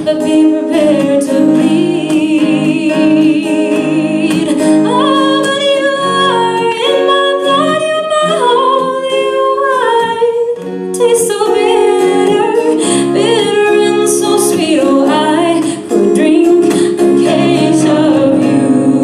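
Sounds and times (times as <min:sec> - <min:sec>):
acoustic guitar: 0:00.0 - 0:19.0
woman singing: 0:00.0 - 0:19.0.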